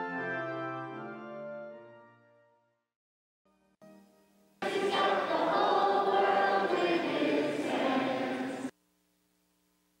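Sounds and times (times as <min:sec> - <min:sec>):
choir singing: 0:04.6 - 0:08.7.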